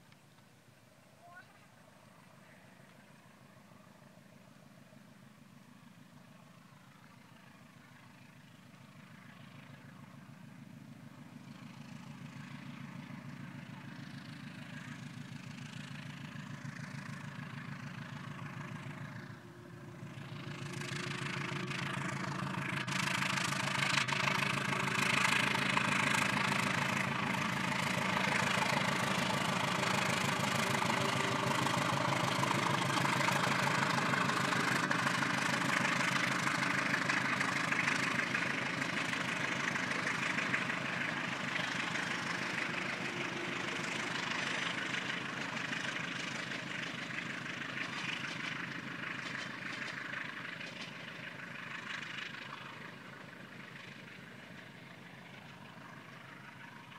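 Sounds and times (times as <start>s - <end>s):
locomotive engine drone: 0.0s - 56.9s.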